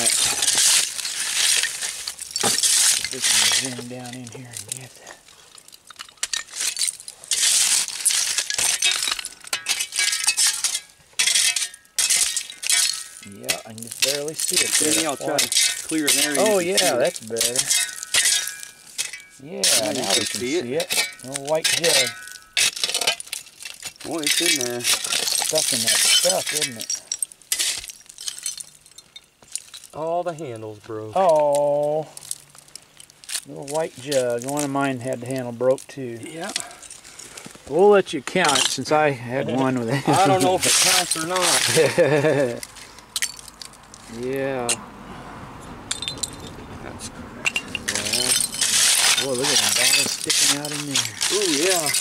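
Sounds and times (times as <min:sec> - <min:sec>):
glass clinking: 0:08.4 - 0:29.9, 0:45.9 - 0:46.6, 0:47.4 - 0:52.0.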